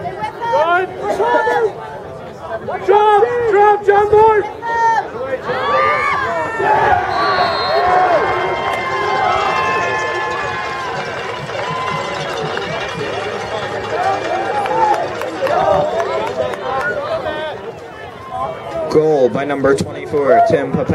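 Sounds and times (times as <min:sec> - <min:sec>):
spectators cheering and shouting: 0:00.0 - 0:20.9.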